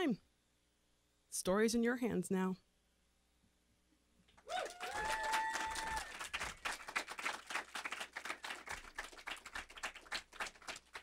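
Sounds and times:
person whooping: 4.4s - 6.3s
audience applauding: 4.5s - 11.0s.

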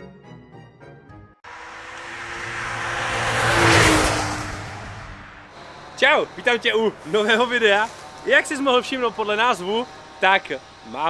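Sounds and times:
car passing by: 1.4s - 9.2s.

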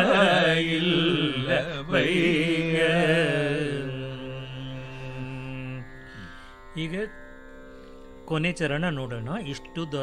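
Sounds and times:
man singing long note: 0.0s - 6.0s
sustained drone: 0.0s - 10.0s.

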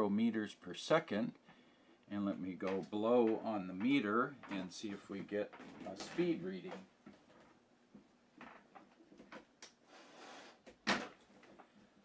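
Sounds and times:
handling clicks and knocks: 2.6s - 9.6s
breath blowing: 9.8s - 10.7s.

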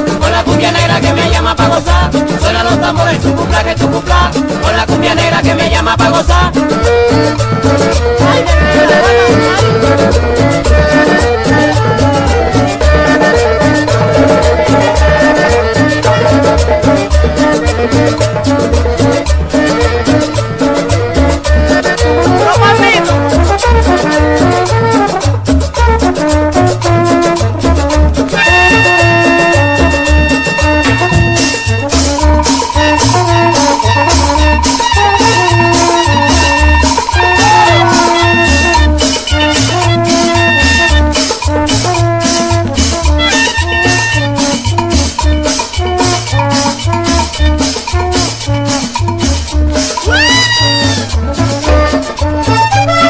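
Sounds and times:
held high tones: 0.0s - 23.3s, 28.3s - 41.4s, 43.1s - 48.0s, 49.8s - 53.0s
instrumental cumbia music: 0.0s - 53.0s.

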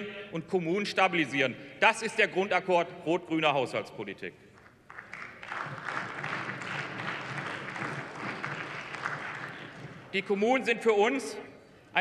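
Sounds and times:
audience applause: 4.9s - 10.1s.

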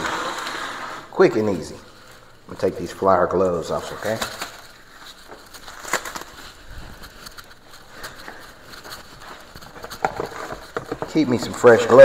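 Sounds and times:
rubber gloves snapping: 5.3s - 9.0s.

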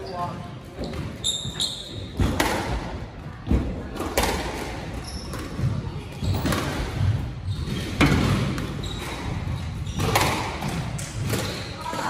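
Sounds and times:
shoes squeaking on wooden floor: 0.0s - 2.2s, 8.7s - 10.5s
squash ball cracking off walls: 10.0s - 12.0s.

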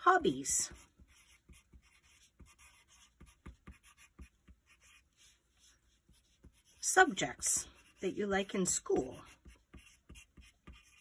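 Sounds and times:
pencil scratching on paper: 0.0s - 11.0s.

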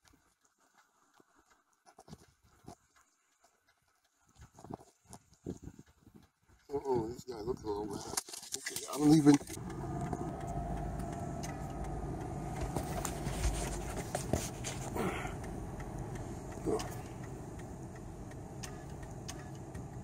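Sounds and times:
vehicle engine rumble: 8.7s - 20.0s.

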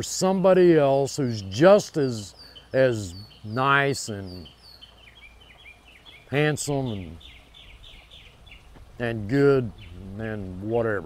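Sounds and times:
faint low outdoor hum: 0.0s - 11.0s
small bird chirping: 1.4s - 10.5s.

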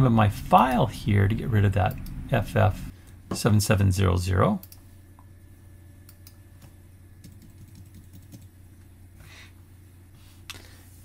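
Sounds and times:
low steady hum: 0.0s - 11.0s
keyboard keystrokes: 7.2s - 8.5s.

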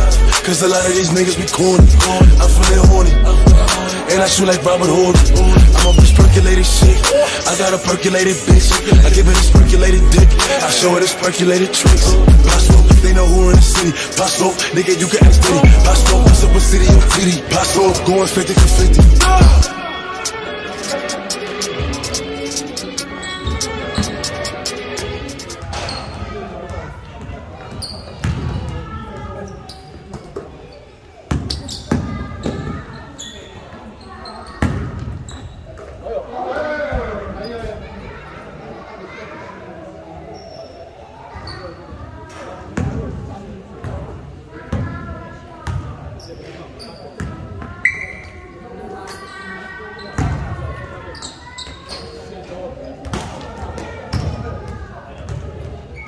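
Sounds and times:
players calling out: 0.0s - 26.2s
players' voices: 0.0s - 56.0s
basketball bouncing indoors: 28.2s - 29.2s, 34.6s - 35.2s.

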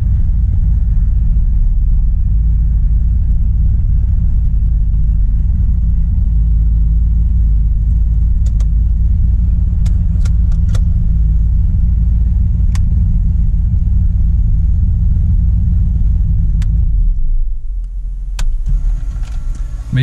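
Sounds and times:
car engine idling: 0.0s - 20.0s
sharp clicks: 8.4s - 8.8s, 9.8s - 10.9s.

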